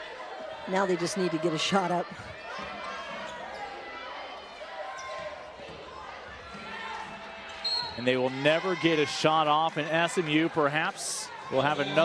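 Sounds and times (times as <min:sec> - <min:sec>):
crowd noise: 0:00.0 - 0:12.0
sneakers squeaking on court: 0:05.0 - 0:05.4.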